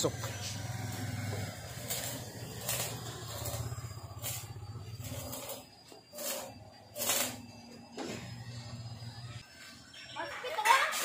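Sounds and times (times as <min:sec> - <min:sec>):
small engine idling: 0:00.0 - 0:06.0.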